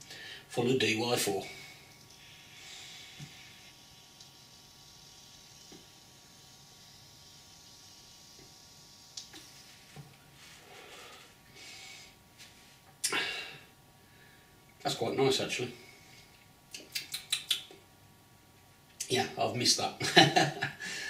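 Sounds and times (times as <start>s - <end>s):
e-cigarette inhale hiss: 1.8s - 12.2s.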